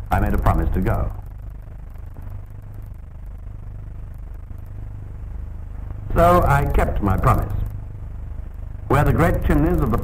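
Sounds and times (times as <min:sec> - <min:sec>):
film crackle: 0:00.0 - 0:09.0
steady low hum: 0:00.0 - 0:10.0.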